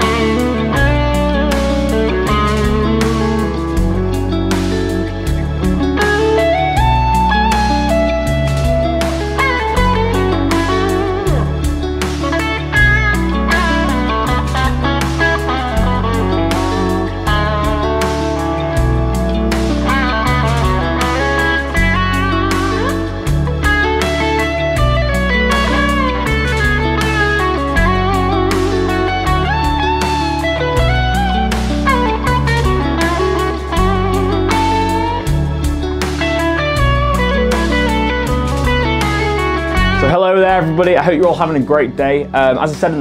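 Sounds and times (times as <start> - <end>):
backing track with bass and drums: 0.0 - 43.0
electric guitar lead with bends: 0.0 - 43.0.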